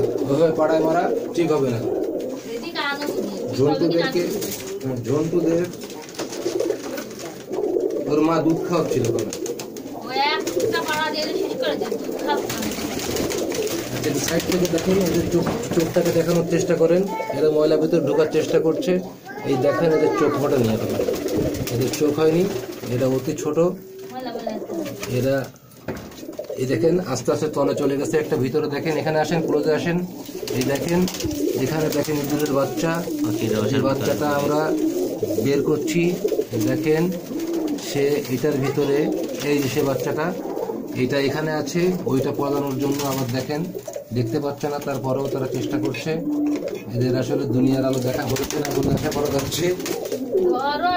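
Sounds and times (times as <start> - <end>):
pigeons cooing: 0.0 - 50.9.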